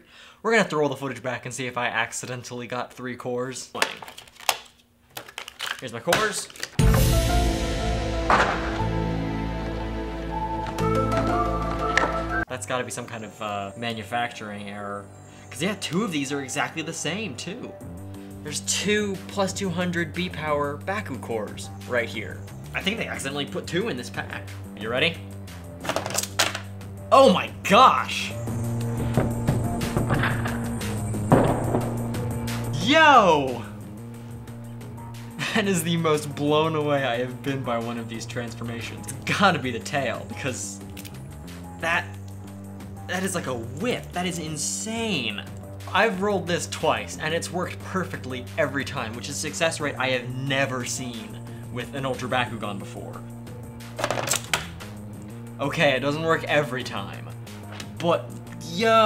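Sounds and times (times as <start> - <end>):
plastic toy clattering and snapping: 3.8 - 6.8, 25.8 - 26.7, 54.0 - 54.7
background music: 6.8 - 59.0.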